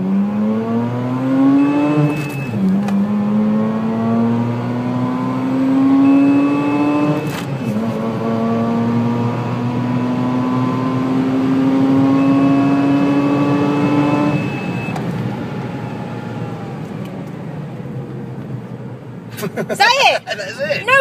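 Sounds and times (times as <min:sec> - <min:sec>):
rotary engine at full throttle: 0:00.0 - 0:16.8.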